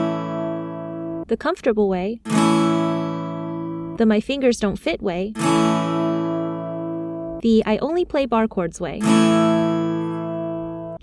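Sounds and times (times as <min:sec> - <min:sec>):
acoustic guitar chord strum: 0:00.0 - 0:01.3, 0:02.2 - 0:04.1, 0:05.3 - 0:07.4, 0:09.0 - 0:11.0.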